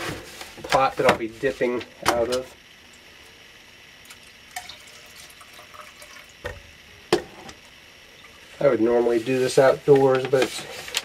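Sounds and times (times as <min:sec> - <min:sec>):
liquid wax trickling: 0:04.0 - 0:06.4.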